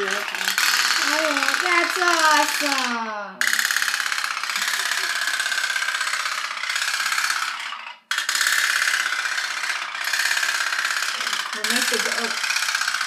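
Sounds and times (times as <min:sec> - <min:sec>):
toy boat buzzing rattle: 0:00.0 - 0:13.0.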